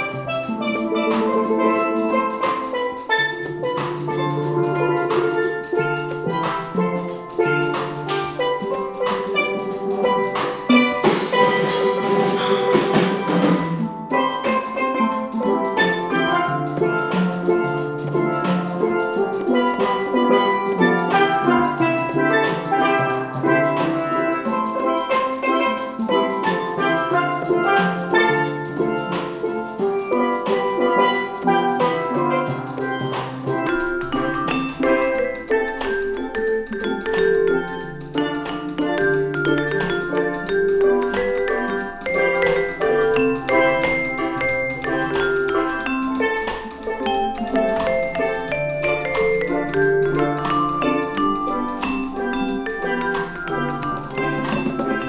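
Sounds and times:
drum kit steady beat: 0.0 - 55.0
steel pan ensemble playing: 0.0 - 55.0.

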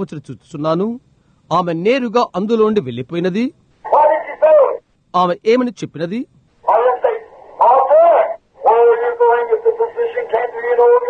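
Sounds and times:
man preaching: 1.6 - 11.0.

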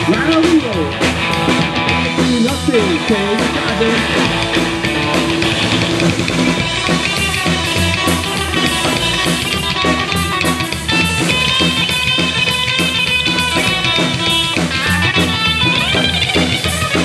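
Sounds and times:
drum kit: 0.0 - 17.0
electric guitar: 0.0 - 17.0
upright bass: 0.0 - 17.0.

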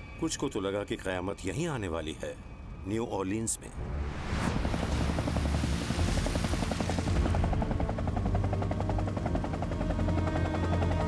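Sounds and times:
low engine drone: 3.8 - 11.0
helicopter rotor chopping: 4.5 - 11.0.

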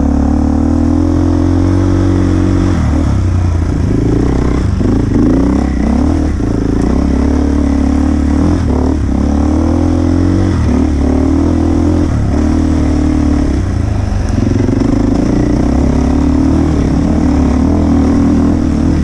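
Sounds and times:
dirt bike engine: 0.0 - 19.0.

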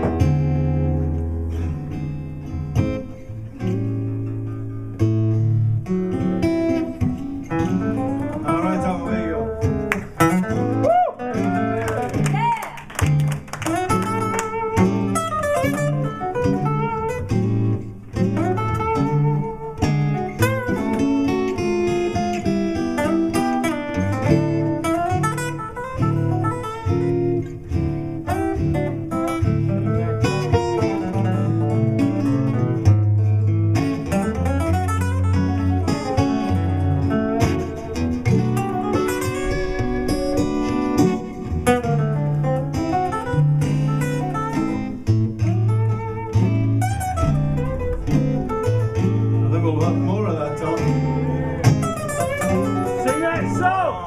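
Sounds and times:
acoustic guitars playing blues-rock: 0.0 - 54.0.

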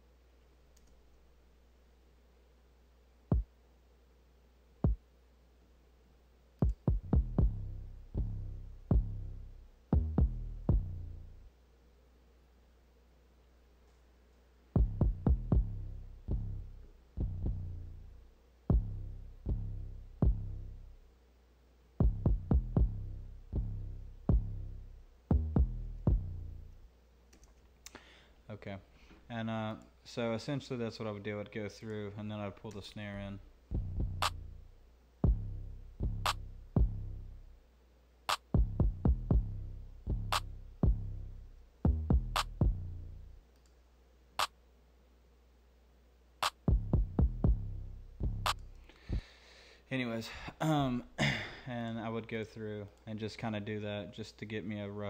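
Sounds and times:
kick drum hits: 6.6 - 7.5, 22.0 - 22.9, 38.6 - 39.4, 46.7 - 47.6
low bass tail: 6.7 - 11.5, 14.8 - 21.0, 22.0 - 26.8, 33.3 - 37.6, 38.6 - 43.4, 46.7 - 49.3
sharp snare drum: 41.9 - 42.6, 46.4 - 47.5.

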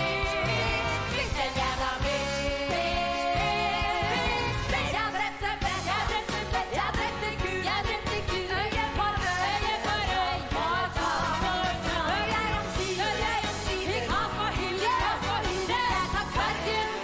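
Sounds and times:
women singing: 0.0 - 17.0.

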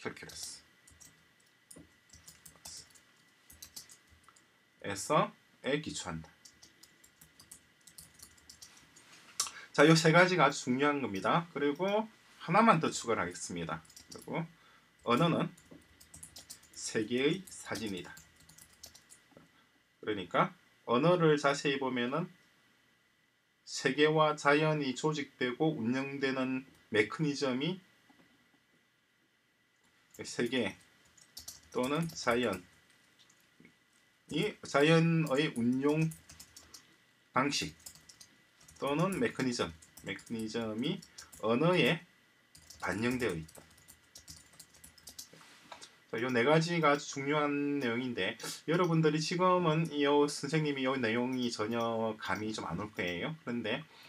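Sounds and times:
faint typing on keyboard: 0.0 - 4.5, 5.8 - 9.6, 11.0 - 12.1, 13.0 - 14.4, 15.0 - 19.5, 29.8 - 50.0, 50.6 - 53.9
keyboard keystrokes: 42.6 - 45.3.

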